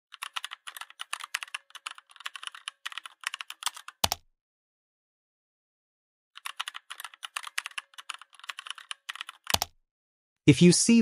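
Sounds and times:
computer keyboard typing: 0.1s - 4.2s, 6.4s - 9.8s.

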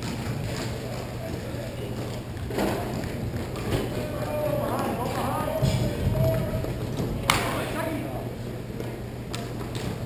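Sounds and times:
clacks of hockey sticks and pucks: 0.0s - 7.6s, 8.8s - 10.0s
people calling out: 3.7s - 8.3s.

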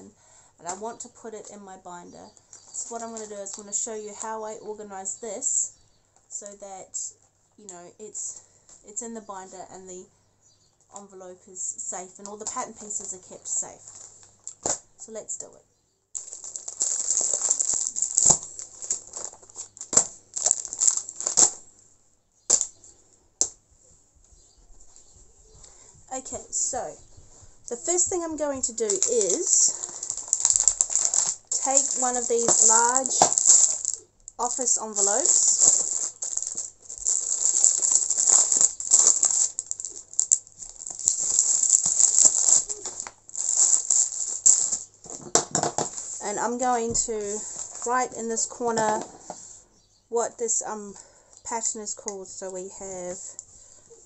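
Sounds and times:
plastic and paper crinkling: 2.4s - 4.4s, 12.2s - 14.8s, 16.2s - 21.7s, 24.8s - 49.5s.

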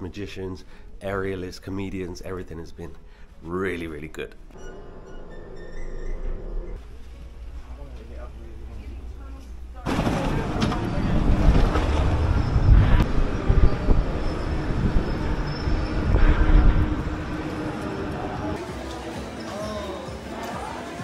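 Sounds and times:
wind buffeting microphone: 10.8s - 18.5s.

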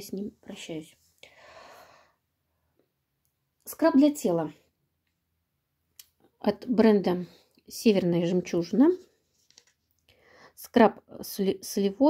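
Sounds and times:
woman breathing out: 1.2s - 2.2s.

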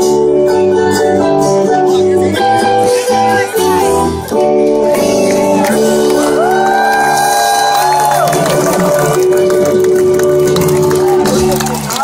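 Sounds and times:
crowd cheering: 5.0s - 12.0s
person whooping: 5.5s - 9.2s.

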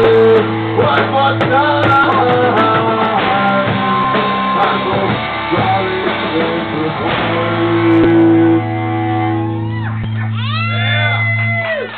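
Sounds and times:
high voice whooping: 9.6s - 11.9s.

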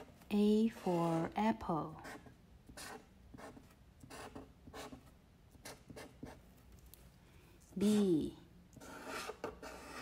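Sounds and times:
marker pen drawing on paper: 0.6s - 6.4s, 8.8s - 10.0s.

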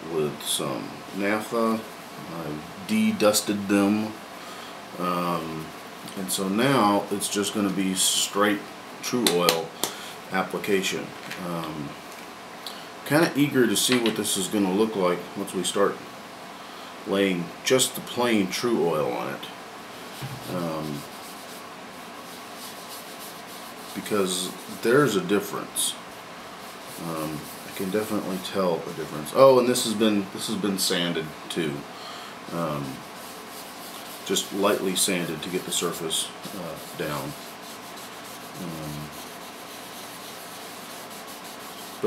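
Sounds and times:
cloth rag rubbing wood: 20.0s - 31.0s, 31.7s - 42.0s.

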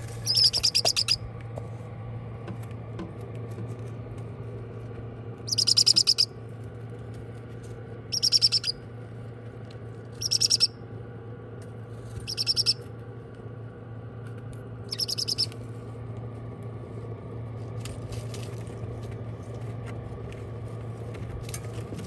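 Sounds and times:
steady low hum: 0.0s - 22.0s
parrot chicks chirping: 0.1s - 1.2s, 5.5s - 6.3s, 8.1s - 8.8s, 10.2s - 10.7s, 12.2s - 12.8s, 14.9s - 15.6s.

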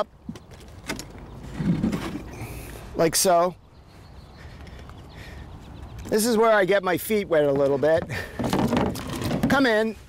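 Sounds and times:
canoe scraping: 0.8s - 2.8s, 7.4s - 10.0s
canoe knocking: 7.5s - 9.8s.

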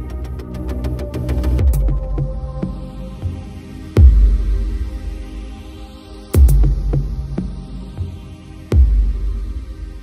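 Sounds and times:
electronic music with throbbing bass: 0.0s - 10.0s.

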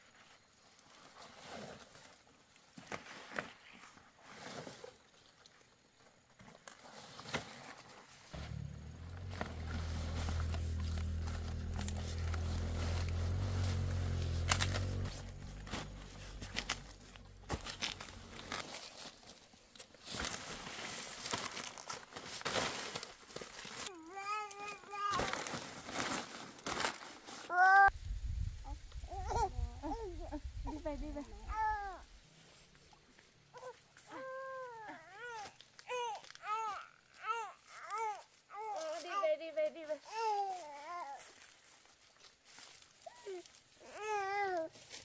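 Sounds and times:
leaves crinkling and rustling: 0.0s - 45.0s
baby babbling: 27.5s - 27.9s.

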